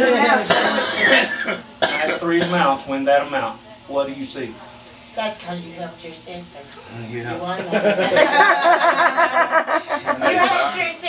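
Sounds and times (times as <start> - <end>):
people talking: 0.0 - 11.0
person coughing: 0.5 - 2.7.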